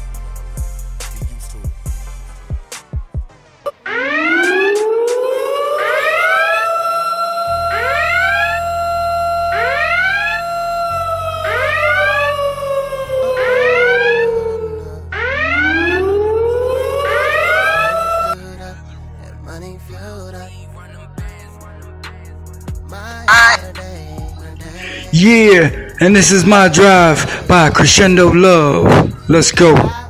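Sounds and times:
rising siren whoops: 3.7 - 18.4, 23.3 - 23.7
wailing siren tone: 3.7 - 18.4, 23.3 - 23.7
deep bass tone: 7.5 - 18.6, 22.8 - 29.3.

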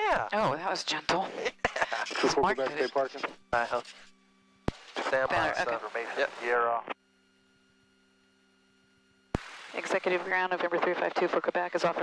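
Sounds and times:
faint steady hum: 0.0 - 12.0
person speaking over intercom: 5.1 - 6.2.

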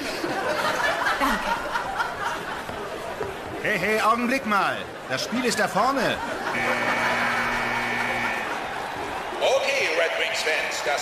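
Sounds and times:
arena horn blast: 6.5 - 8.8.

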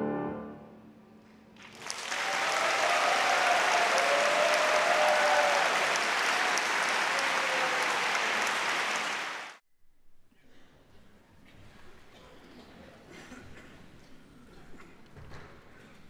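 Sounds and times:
audience applauding: 1.6 - 9.6.

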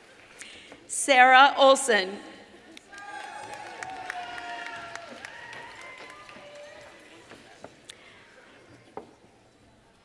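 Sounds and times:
audience voices and cheers: 2.8 - 7.7.

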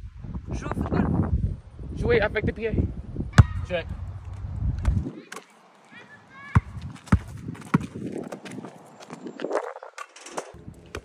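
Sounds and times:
ball thudding off feet: 6.5 - 8.7.

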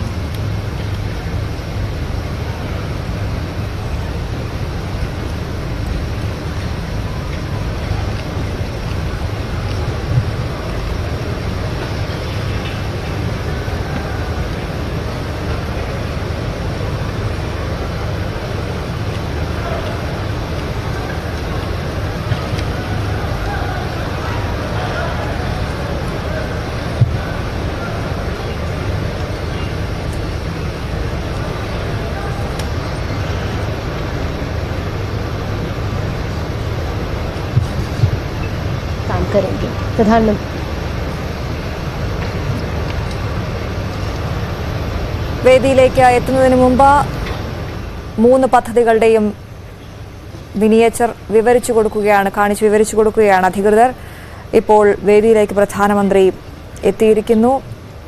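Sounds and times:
faint indistinct voices: 6.0 - 57.6.

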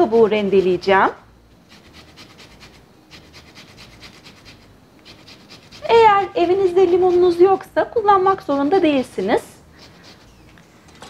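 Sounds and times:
lemon rind grating: 0.0 - 0.9, 1.7 - 10.4.

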